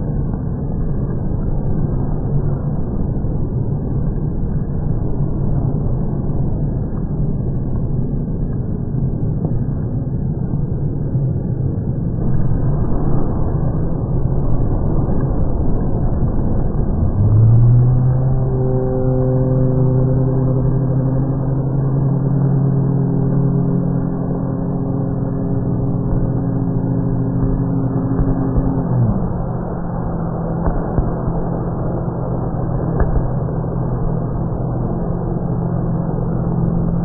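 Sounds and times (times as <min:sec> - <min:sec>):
low steady hum: 0:00.0 - 0:37.0
stadium rumble: 0:00.0 - 0:37.0
low chord sliding down in pitch: 0:16.6 - 0:37.0.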